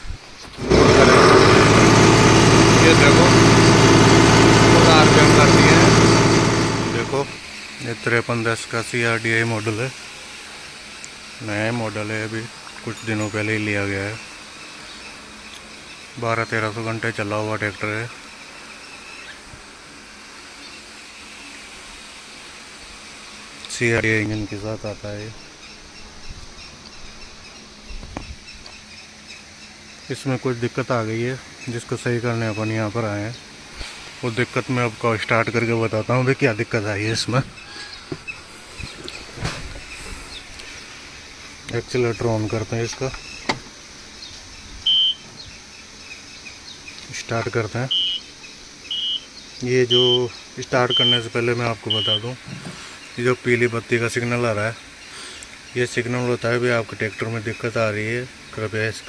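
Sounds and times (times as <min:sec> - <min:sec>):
steady background hiss: 0:07.0 - 0:59.0
high-pitched warning beep: 0:44.9 - 0:45.2, 0:47.9 - 0:48.3, 0:48.9 - 0:49.3, 0:49.9 - 0:50.2, 0:50.9 - 0:52.3.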